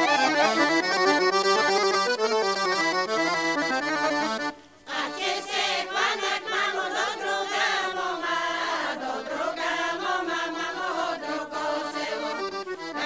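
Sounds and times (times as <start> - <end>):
women singing together: 4.9 - 13.0.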